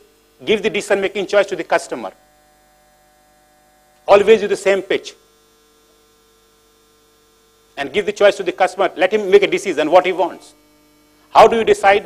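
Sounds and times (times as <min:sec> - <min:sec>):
faint electrical mains hum: 0:00.0 - 0:12.0
man speaking: 0:00.4 - 0:02.2, 0:04.1 - 0:05.2, 0:07.8 - 0:10.6, 0:11.3 - 0:12.0.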